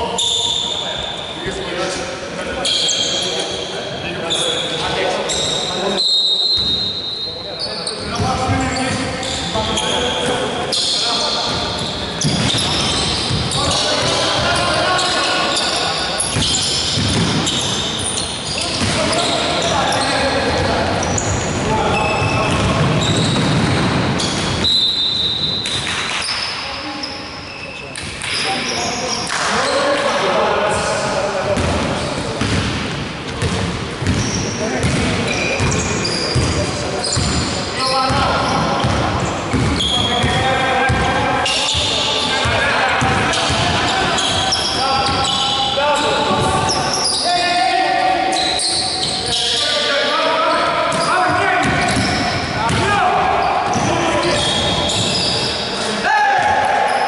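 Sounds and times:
basketball bouncing on wood floor: 16.3s - 17.6s, 21.6s - 24.6s, 31.6s - 36.6s, 38.8s - 41.1s, 50.9s - 52.9s.

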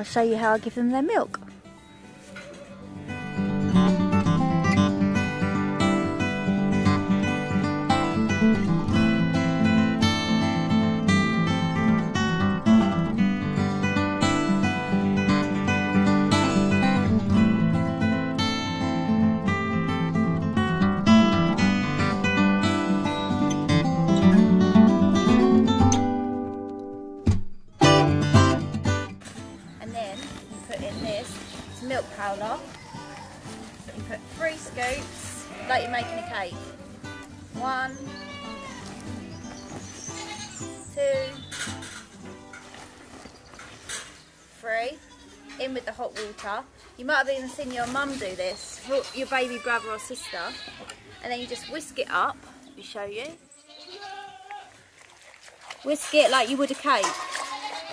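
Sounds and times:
strummed acoustic guitar music: 0.1s - 44.9s.

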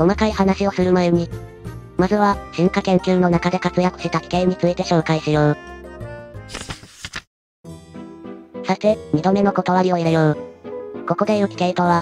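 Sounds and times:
background music: 0.0s - 6.7s, 7.7s - 12.0s
page-turn sound effect: 6.4s - 7.3s.

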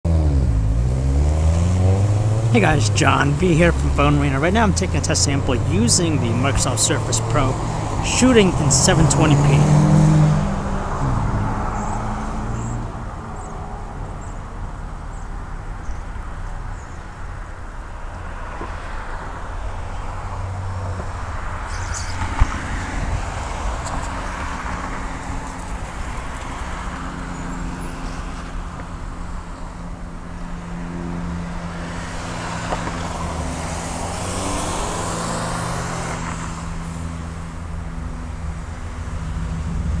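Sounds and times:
low traffic rumble: 0.0s - 40.0s
vehicles passing: 0.0s - 40.0s
low engine hum: 0.1s - 40.0s.

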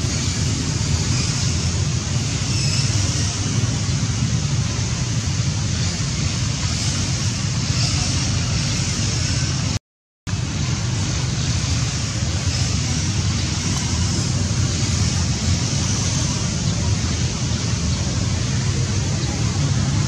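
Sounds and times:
road traffic roar: 0.0s - 20.0s.

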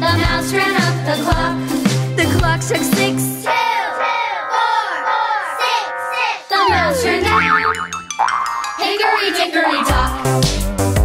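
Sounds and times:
upbeat children's music: 0.0s - 11.0s
cartoon boing spring effects: 5.6s - 9.4s.

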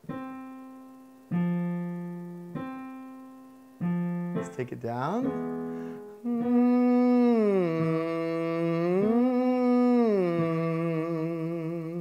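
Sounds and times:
man humming: 6.1s - 12.0s.

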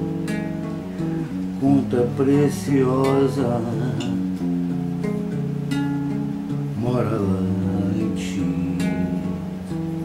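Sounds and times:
acoustic guitar chords: 0.0s - 10.0s.

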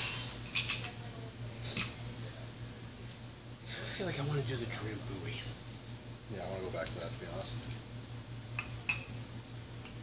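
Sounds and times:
glassware clinking: 0.0s - 1.0s, 8.6s - 9.2s.

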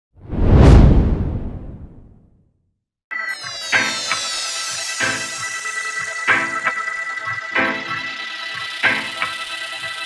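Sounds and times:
deep noisy whoosh: 0.2s - 2.3s.

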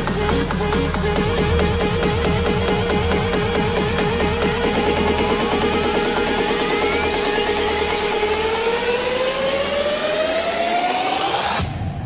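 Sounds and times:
synth tone gliding upward: 0.0s - 11.6s.

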